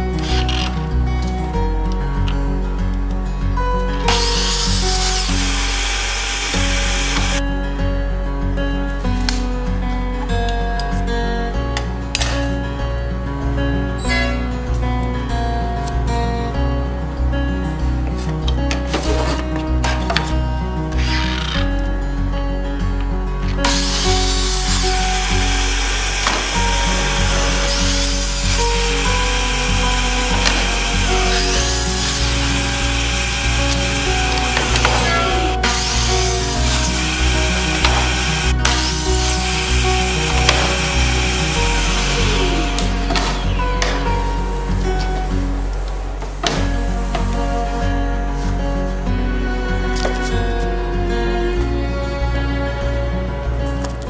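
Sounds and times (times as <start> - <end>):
background music: 0.0 - 54.0
mitre saw cutting wood: 4.1 - 7.4, 23.6 - 45.2.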